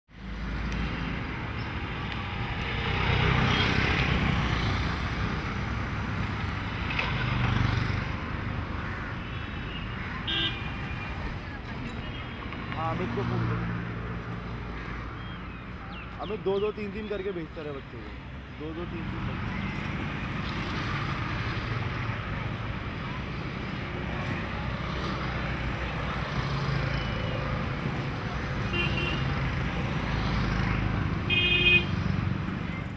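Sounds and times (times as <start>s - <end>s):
road traffic passing: 0.1s - 32.9s.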